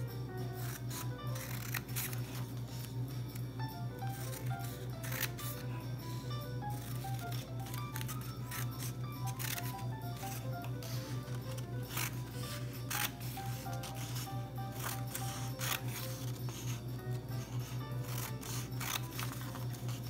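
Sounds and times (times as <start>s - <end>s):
background music melody: 0.0s - 20.0s
scissors cutting paper: 0.0s - 20.0s
steady low hum: 0.0s - 20.0s.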